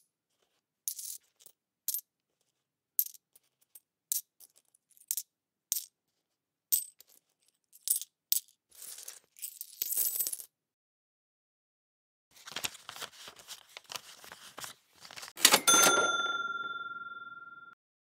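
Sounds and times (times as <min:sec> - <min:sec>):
coins jingling in a spill: 0:06.7 - 0:10.5
coins clinking: 0:15.4 - 0:17.7.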